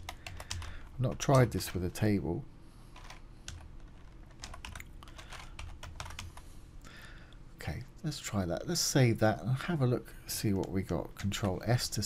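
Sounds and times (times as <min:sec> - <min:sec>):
computer keyboard typing: 0:00.0 - 0:01.8, 0:03.0 - 0:06.4.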